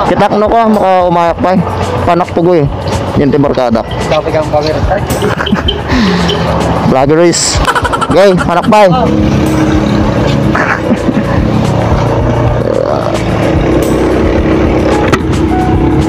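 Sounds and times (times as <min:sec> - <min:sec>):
scooter engine running: 0:09.0 - 0:16.0.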